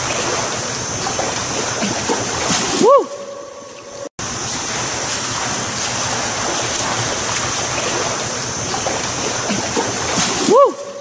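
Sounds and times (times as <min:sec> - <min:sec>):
water splashing from swimming strokes: 0:00.0 - 0:11.0.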